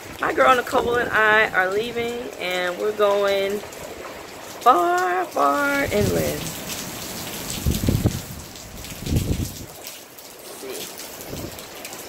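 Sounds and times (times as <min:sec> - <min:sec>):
rain hiss: 0:00.0 - 0:12.0
wind gusts buffeting microphone: 0:00.2 - 0:02.1, 0:05.8 - 0:06.5, 0:07.5 - 0:09.7, 0:11.2 - 0:11.6.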